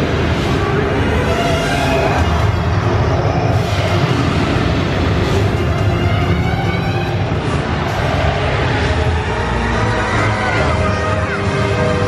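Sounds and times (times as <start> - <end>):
dramatic music over loudspeakers: 0.0 - 12.0.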